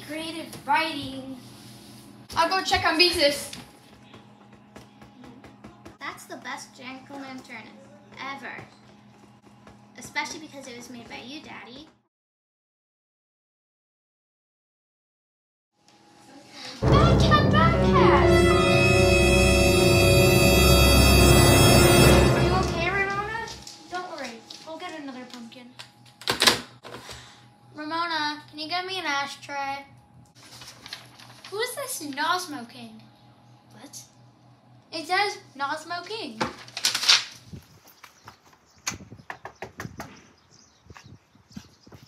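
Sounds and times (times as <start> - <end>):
footsteps on concrete steps: 2.3 - 12.1
dramatic music: 16.8 - 23.6.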